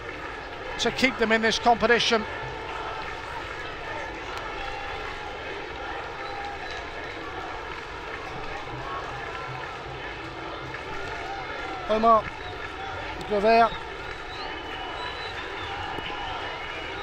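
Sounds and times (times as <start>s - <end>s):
stadium crowd din: 0.0s - 17.0s.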